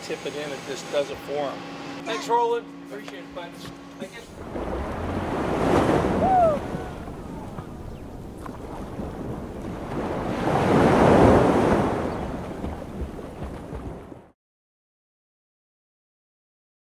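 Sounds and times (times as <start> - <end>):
rushing noise like waves: 4.2 - 14.2
short falling whistle: 6.2 - 6.9.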